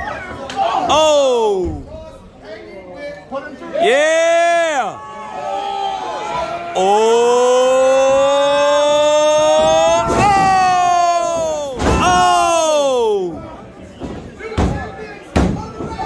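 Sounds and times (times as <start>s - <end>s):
person shouting: 6.8s - 13.3s.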